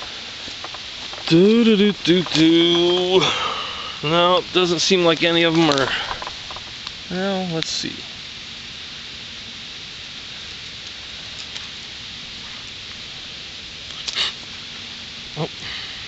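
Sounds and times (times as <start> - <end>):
leaf litter rustling: 0.0 - 16.0
steady outdoor hiss: 0.0 - 16.0.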